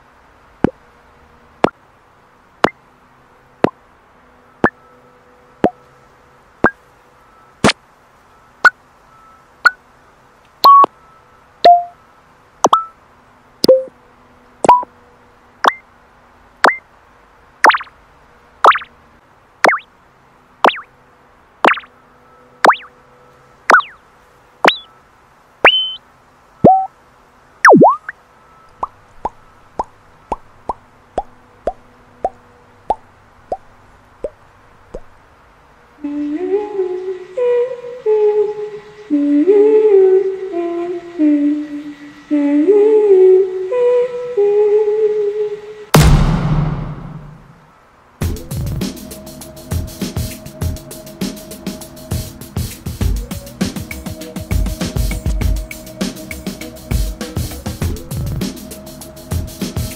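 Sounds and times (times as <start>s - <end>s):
electronic selection blips: 10.6s - 10.9s, 11.6s - 11.9s, 12.6s - 12.9s, 13.6s - 13.9s, 14.6s - 14.9s, 16.6s - 16.8s, 17.6s - 17.9s, 19.6s - 19.8s, 20.6s - 20.9s, 21.6s - 21.9s, 22.6s - 22.9s, 23.7s - 24.0s, 24.7s - 24.9s, 25.6s - 26.0s, 26.6s - 26.9s, 27.6s - 28.1s
pop or bloop effects: 10.6s - 10.9s, 11.6s - 11.9s, 12.6s - 12.9s, 13.6s - 13.9s, 14.6s - 14.9s, 16.6s - 16.8s, 17.6s - 17.9s, 18.6s - 18.9s, 19.6s - 19.9s, 20.6s - 20.9s, 21.6s - 21.9s, 22.6s - 22.9s, 23.7s - 24.0s, 24.7s - 24.9s, 25.6s - 26.0s, 26.6s - 26.9s, 27.6s - 28.1s
person humming a tune: 36.0s - 45.8s.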